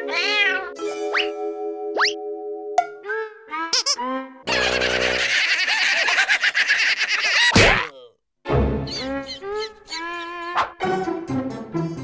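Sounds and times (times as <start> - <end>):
cartoon voices giggling: 3.8 - 7.9.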